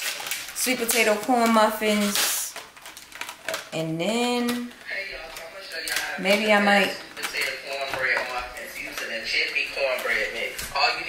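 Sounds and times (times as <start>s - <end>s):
person talking: 0.6s - 2.6s, 3.7s - 11.0s.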